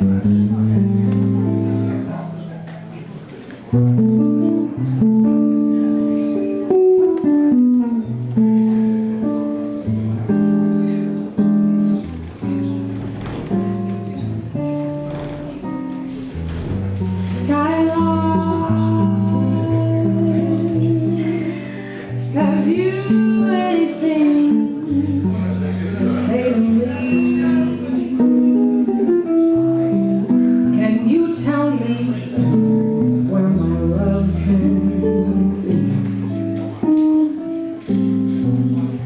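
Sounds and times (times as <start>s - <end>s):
electric jazz guitar: 0.0s - 39.0s
woman singing: 17.3s - 28.9s, 30.6s - 36.0s.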